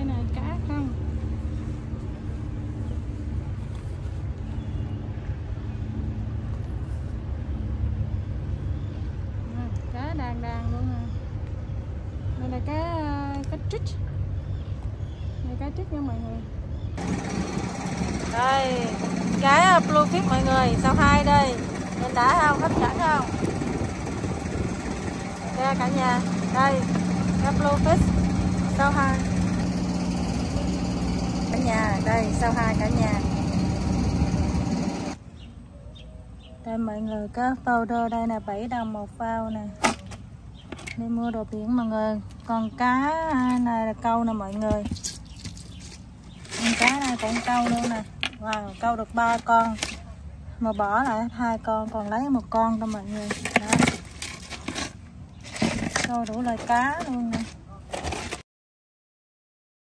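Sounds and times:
engine humming: 0.0s - 35.6s, 36.7s - 58.4s
boat engine idling: 17.0s - 35.2s.

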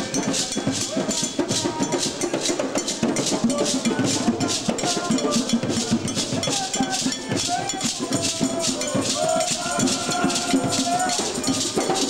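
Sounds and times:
hand drums playing dance rhythm: 0.0s - 12.0s
gourd rattle shaking: 3.5s - 12.0s.

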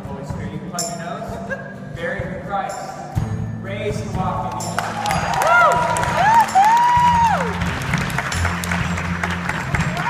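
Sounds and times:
live band playing low notes: 0.0s - 10.0s
congregation clapping: 4.5s - 10.0s
whooping cheers: 4.8s - 7.8s, 9.7s - 10.0s.

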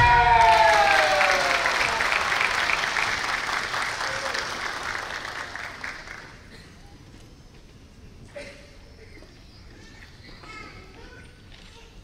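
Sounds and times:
murmur of a large hall: 0.0s - 12.0s.

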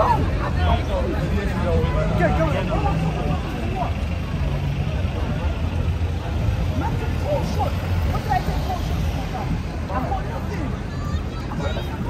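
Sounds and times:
low rumble of road traffic: 0.0s - 12.0s
passers-by talking: 0.0s - 12.0s.

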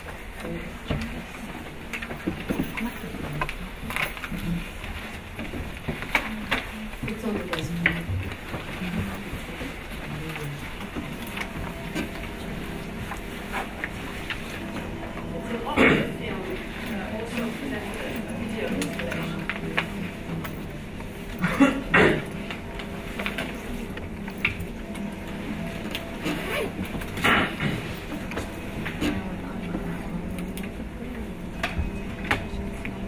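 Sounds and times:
murmur of voices: 0.3s - 33.0s.

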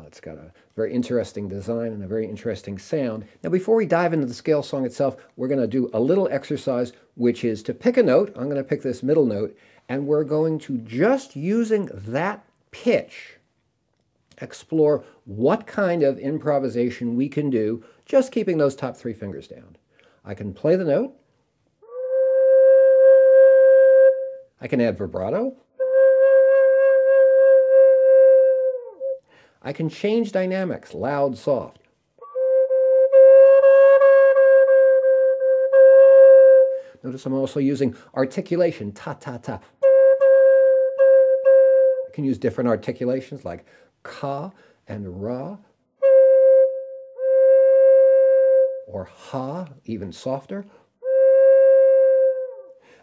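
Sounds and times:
flute playing long note: 21.8s - 24.4s, 25.8s - 29.2s, 32.2s - 36.9s, 39.8s - 42.1s, 46.0s - 48.8s, 51.0s - 52.7s.

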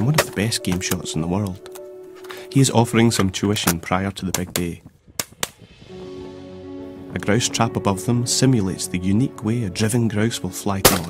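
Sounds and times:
background music with held notes: 0.0s - 4.3s, 5.4s - 11.0s.

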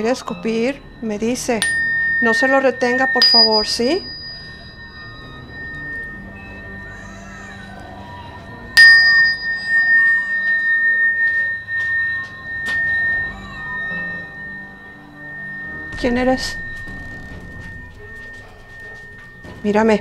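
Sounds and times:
tuning fork ringing: 0.0s - 20.0s.

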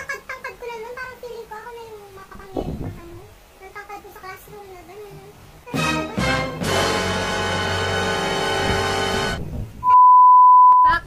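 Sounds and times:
music: 5.7s - 9.4s
censor bleep: 9.8s - 10.9s.

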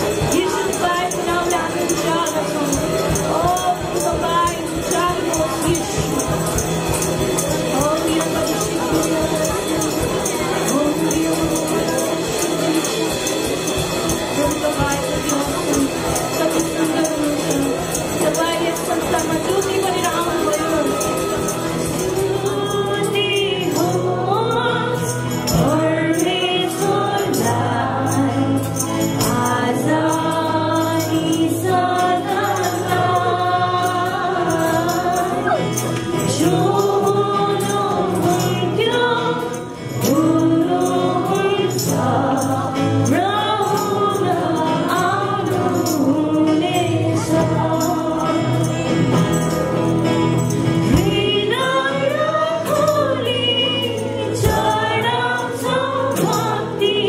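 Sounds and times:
group singing into microphones: 0.0s - 57.0s
strummed acoustic guitars: 0.0s - 57.0s
tambourine jingling: 0.0s - 57.0s.

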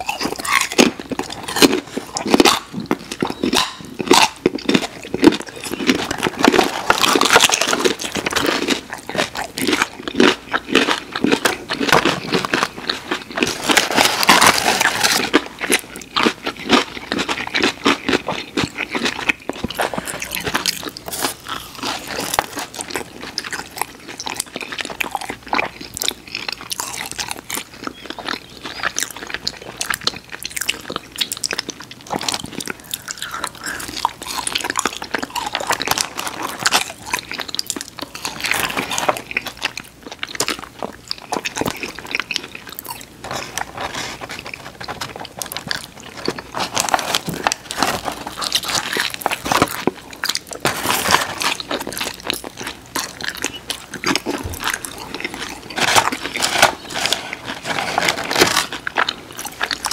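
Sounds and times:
chewing and crunching food: 0.0s - 59.9s.

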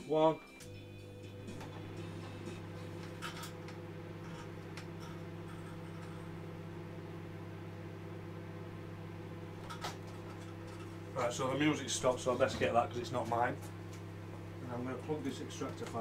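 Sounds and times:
microwave oven humming: 0.1s - 16.0s.

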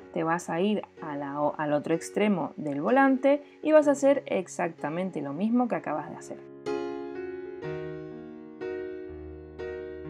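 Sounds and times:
soft keyboard chords: 0.0s - 10.0s.

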